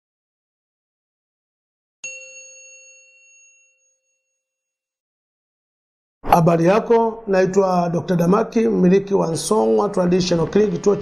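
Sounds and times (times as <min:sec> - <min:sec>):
metallic bell ding: 0:02.0 - 0:04.6.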